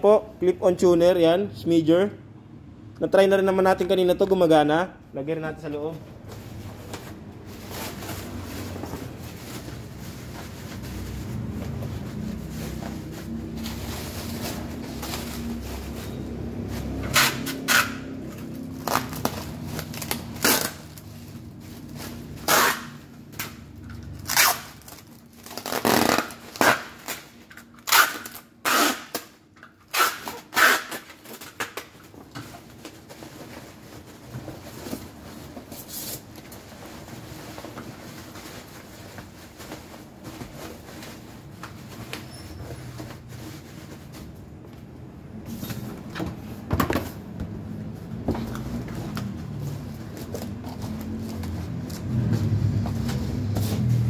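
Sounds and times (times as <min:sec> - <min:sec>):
bubble wrap crinkling: 0:18.1 - 0:22.9, 0:24.1 - 0:27.5.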